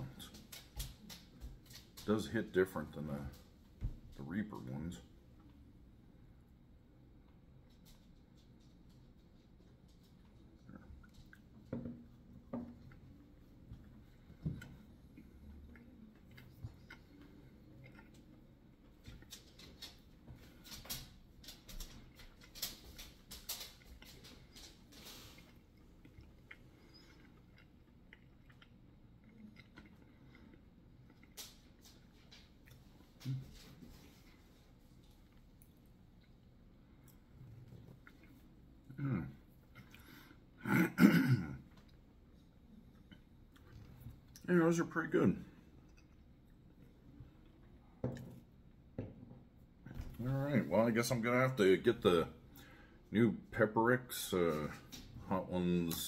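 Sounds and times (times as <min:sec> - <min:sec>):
chewing and crunching: 0:07.6 - 0:40.4, 0:41.7 - 0:44.5, 0:45.6 - 0:47.8.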